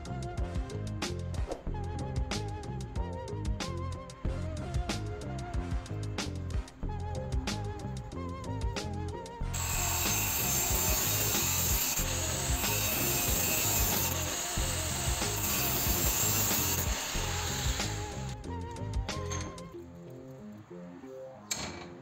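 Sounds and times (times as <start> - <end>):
background music: 0.0 - 22.0
angle grinder cutting metal: 9.5 - 18.4.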